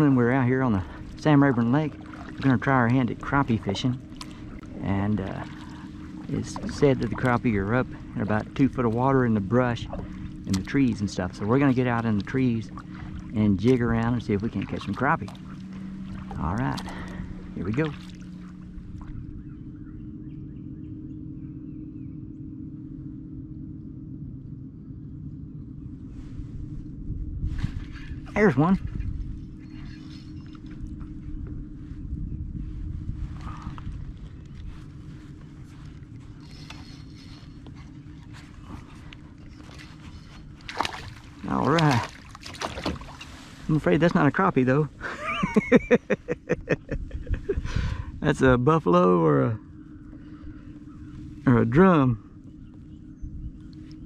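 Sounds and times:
steady low hum: 0:00.0 - 0:54.0
wind rumbling on microphone: 0:00.0 - 0:54.0
faint bird chirps: 0:16.8 - 0:23.2, 0:27.7 - 0:32.8, 0:33.4 - 0:40.6, 0:49.3 - 0:54.0
man chuckling quietly: 0:45.0 - 0:48.1.

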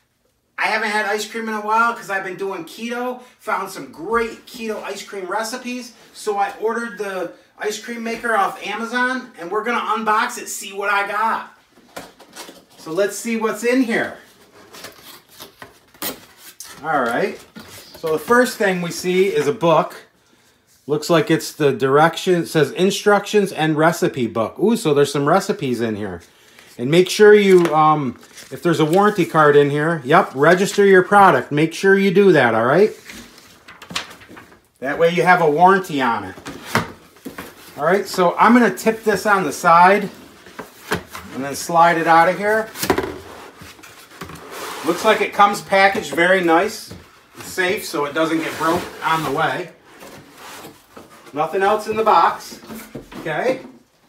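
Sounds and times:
packaging rubbing and scraping: 0:36.5 - 0:46.7, 0:47.4 - 0:53.5.

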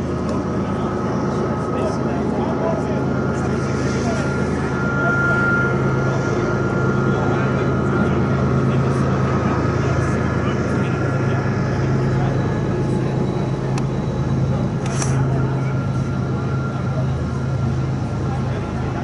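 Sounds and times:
faint voices: 0:00.0 - 0:19.0
low engine drone: 0:00.0 - 0:19.0.

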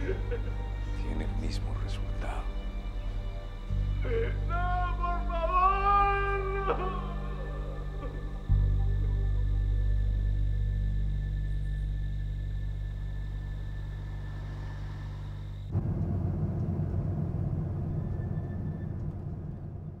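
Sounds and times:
deep sustained low drone: 0:00.0 - 0:20.0
rumbling low swell: 0:00.0 - 0:20.0.

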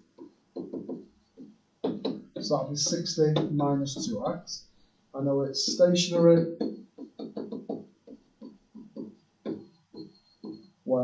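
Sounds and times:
stylus tapping on tablet screen: 0:00.0 - 0:04.4, 0:05.6 - 0:10.8.

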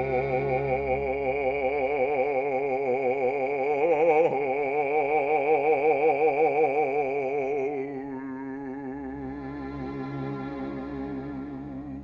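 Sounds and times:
operatic bass voice singing: 0:00.0 - 0:12.0.

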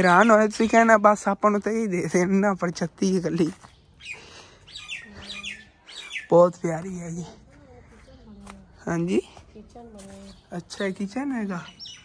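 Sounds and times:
small bird chirping: 0:03.0 - 0:12.0.

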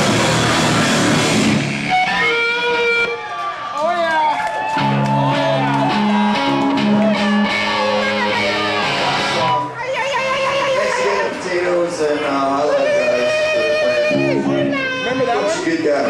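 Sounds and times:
live band with electric guitars: 0:00.0 - 0:03.4, 0:04.4 - 0:11.4, 0:12.8 - 0:15.8
person singing: 0:12.6 - 0:15.4.

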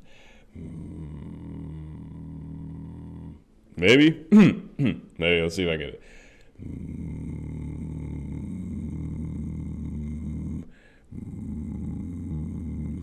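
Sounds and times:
short breath: 0:00.0 - 0:00.6, 0:06.0 - 0:06.6, 0:10.7 - 0:11.1
man singing low growling drone: 0:00.5 - 0:03.4, 0:06.6 - 0:13.0.

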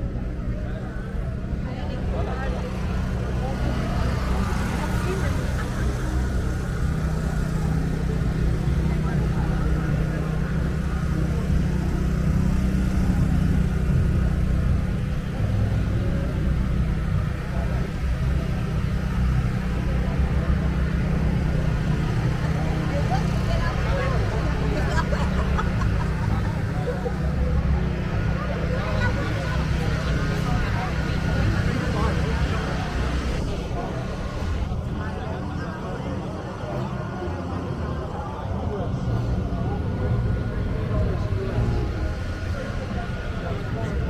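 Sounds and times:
crowd chatter: 0:00.0 - 0:44.0.

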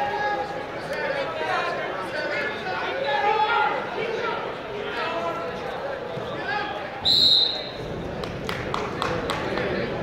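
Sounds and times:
referee's whistle: 0:07.0 - 0:07.8.

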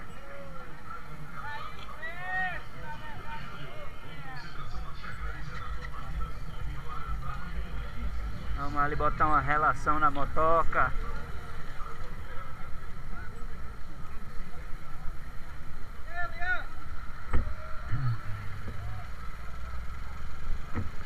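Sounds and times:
motorcycle engine running: 0:04.7 - 0:21.0.

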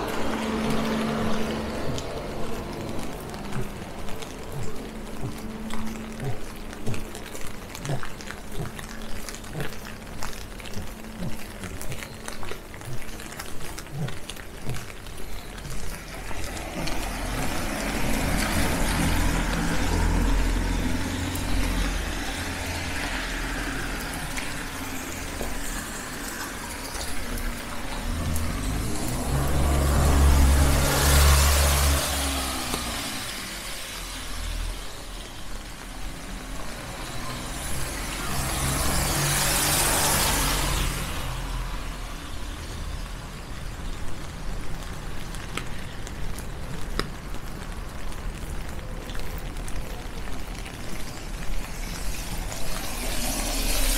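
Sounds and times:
low engine hum: 0:00.0 - 0:45.4
tyres hissing on wet asphalt: 0:00.0 - 0:53.9.

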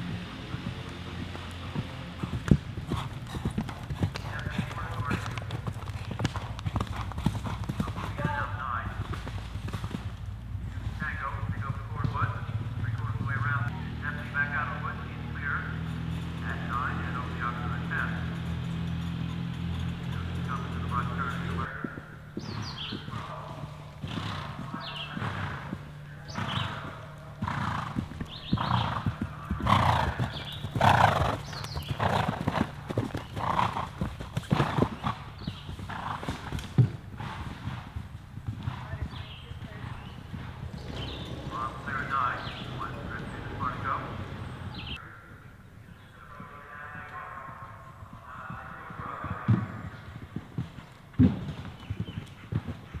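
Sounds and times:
horse breathing: 0:00.0 - 0:11.1, 0:22.0 - 0:45.0, 0:49.9 - 0:53.0
horse hoofbeats on turf: 0:00.0 - 0:43.6, 0:46.3 - 0:53.0
low steady engine hum: 0:00.0 - 0:45.2.

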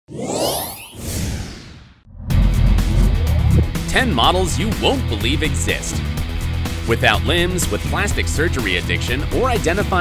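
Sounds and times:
whoosh sound effects: 0:00.2 - 0:05.6.

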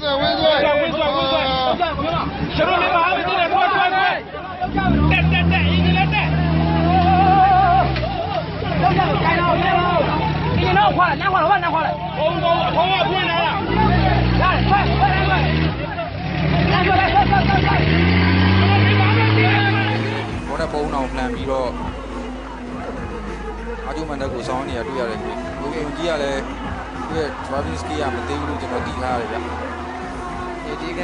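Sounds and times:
crowd shouting: 0:00.0 - 0:31.0
engine revving under load: 0:04.6 - 0:10.7, 0:13.5 - 0:22.4.

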